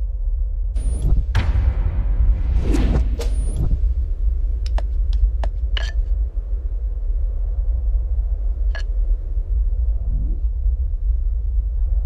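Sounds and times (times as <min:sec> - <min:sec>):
deep rumble: 0:00.0 - 0:12.0.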